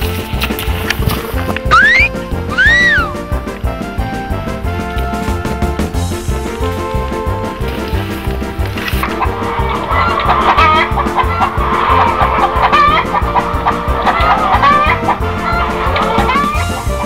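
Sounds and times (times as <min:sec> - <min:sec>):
background music with steady beat: 0:00.0 - 0:17.0
hens clucking: 0:00.1 - 0:04.2, 0:06.4 - 0:17.0.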